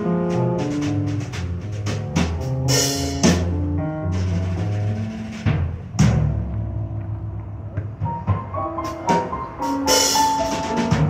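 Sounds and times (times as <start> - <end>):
drum and cymbal hit: 0.0 - 6.3, 8.4 - 11.0.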